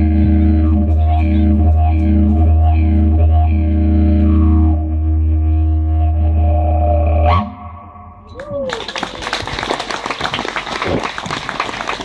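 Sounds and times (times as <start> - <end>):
didgeridoo drone: 0.0 - 8.6.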